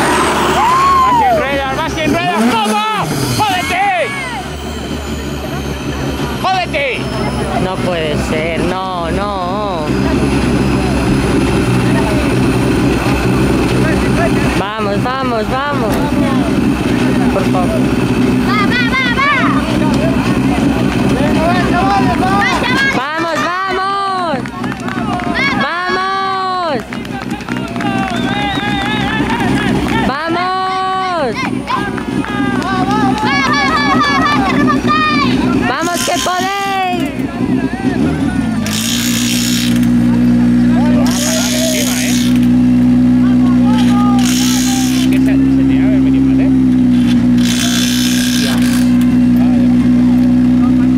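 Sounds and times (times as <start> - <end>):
spectators shouting: 0.0 - 7.7, 18.3 - 39.8, 40.6 - 45.2
car engine idling: 0.0 - 50.9.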